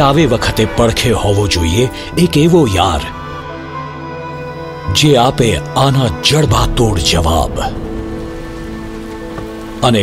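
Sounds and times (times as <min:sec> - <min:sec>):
rain falling steadily: 0:06.5 - 0:10.0.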